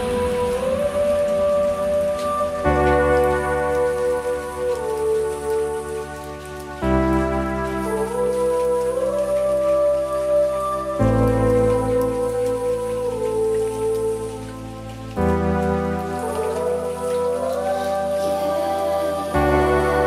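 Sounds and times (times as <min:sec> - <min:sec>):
faint high hiss: 0:00.0 - 0:20.0
gliding lead melody: 0:00.0 - 0:20.0
synth chords: 0:00.0 - 0:20.0.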